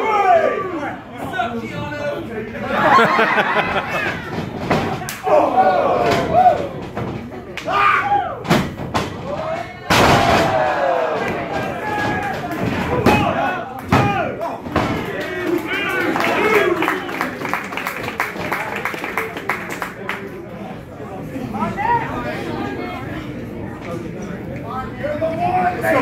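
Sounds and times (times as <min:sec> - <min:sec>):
crowd shouting: 0:00.0 - 0:01.0, 0:03.3 - 0:06.8, 0:10.0 - 0:14.4.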